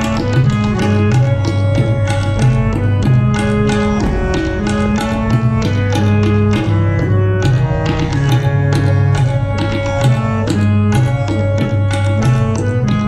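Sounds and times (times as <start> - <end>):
harmonium melody: 0.0 - 13.0
tabla strokes: 0.0 - 13.0.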